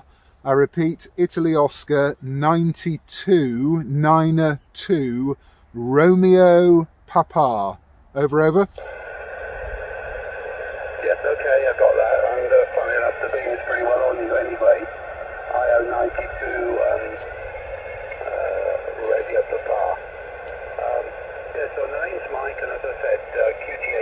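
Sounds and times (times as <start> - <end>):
man talking over radio: 0.5 - 24.0
receiver hiss: 8.2 - 24.0.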